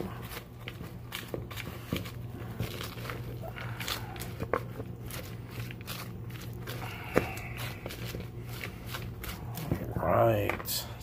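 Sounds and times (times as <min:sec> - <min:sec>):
fork tossing salad in a bowl: 0:00.0 - 0:10.2
steady low hum: 0:00.0 - 0:11.0.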